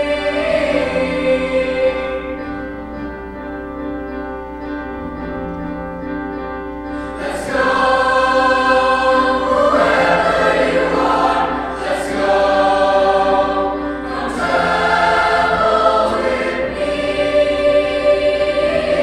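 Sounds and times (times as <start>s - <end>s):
choir singing sustained chords: 0.0s - 19.0s.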